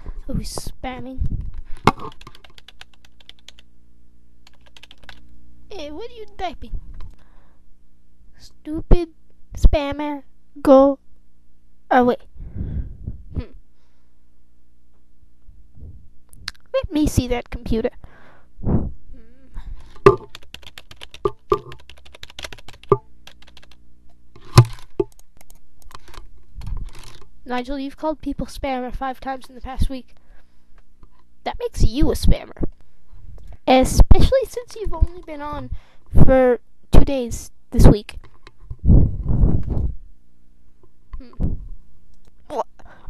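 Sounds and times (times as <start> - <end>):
steady low hum: 0.0 - 43.0
hard knock on keyboard: 20.0 - 20.4, 21.3 - 21.8
keyboard key clicks: 20.0 - 23.8.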